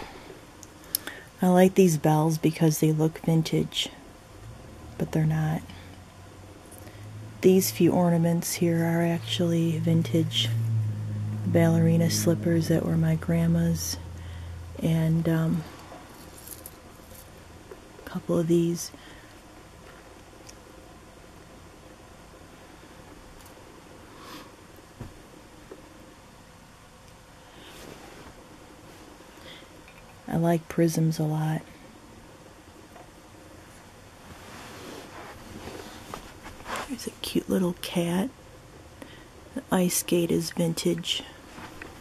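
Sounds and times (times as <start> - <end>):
soft crackles: 33.7 - 37.3.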